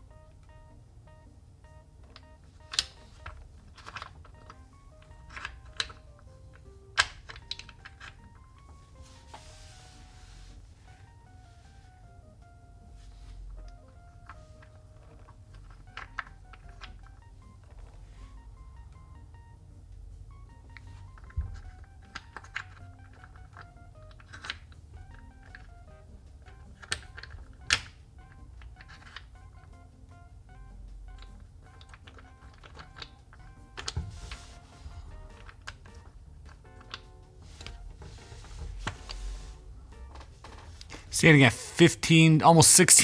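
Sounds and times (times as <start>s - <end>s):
soft background music: 0.0s - 43.0s
wooden blocks clicking and knocking: 2.0s - 8.8s, 13.6s - 18.0s, 20.6s - 29.9s, 31.1s - 37.8s.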